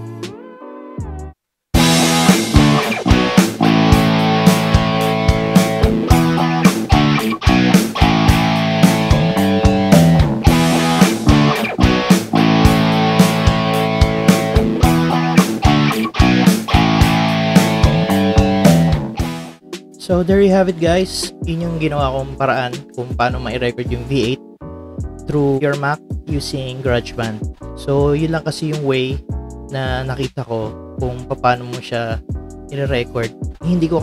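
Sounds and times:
drums bass and guitar music: 1.0 - 34.0.

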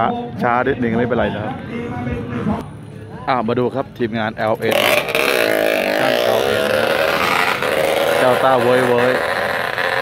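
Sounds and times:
motorcycle engine revving hard: 4.6 - 10.0.

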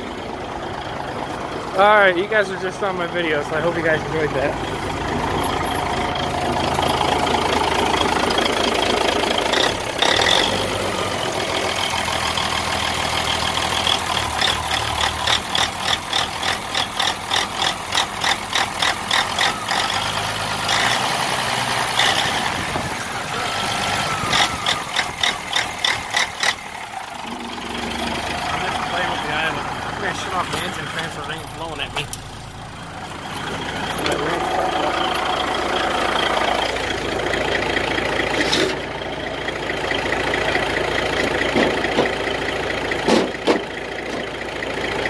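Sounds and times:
diesel engine idling: 0.0 - 45.0
sharp rhythmic engine ticking: 0.0 - 45.0.

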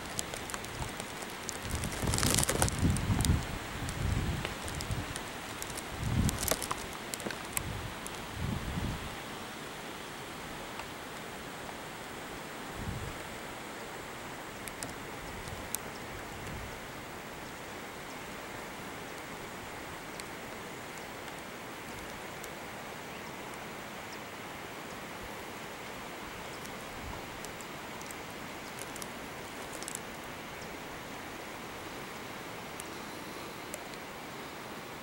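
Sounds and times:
steady rushing outdoor noise: 0.0 - 35.0.

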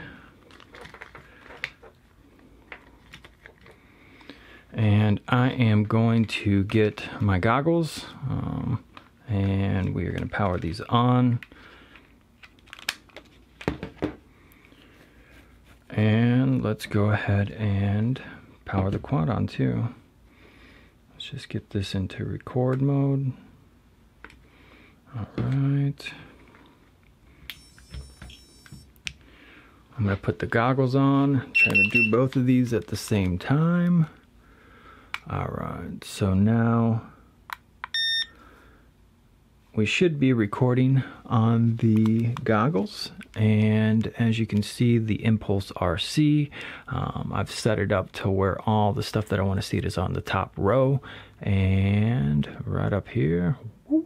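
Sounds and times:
faint high electronic whine: 27.3 - 29.0.

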